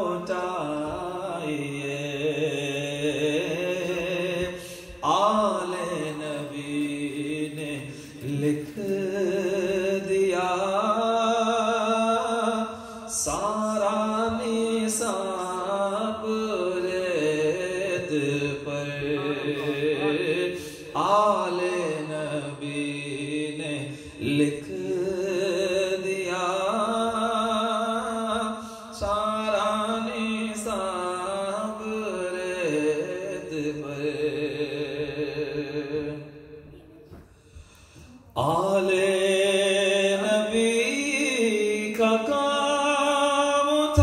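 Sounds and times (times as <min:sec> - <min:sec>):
man chanting into a microphone: 0:00.0 - 0:36.7, 0:37.5 - 0:44.0.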